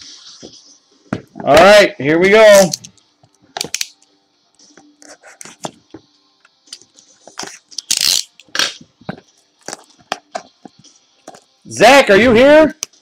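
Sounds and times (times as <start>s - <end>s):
packaging tearing: 7.5s - 8.7s.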